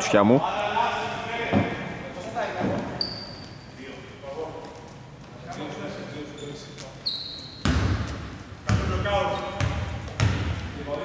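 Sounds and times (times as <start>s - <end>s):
short high squeak: 3.0s - 3.8s, 6.4s - 7.7s
basketball bouncing on hardwood: 7.6s - 8.9s, 9.6s - 10.6s.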